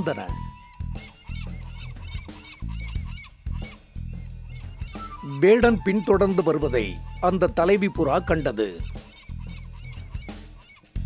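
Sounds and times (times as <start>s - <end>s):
background music with low notes: 0.0s - 11.0s
cartoon bird calls: 0.0s - 11.0s.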